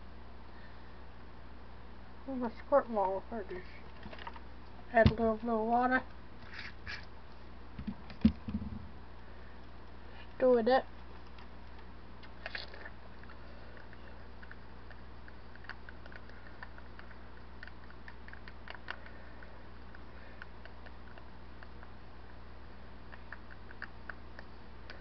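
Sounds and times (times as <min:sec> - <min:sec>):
low hum: 0:00.0 - 0:25.0.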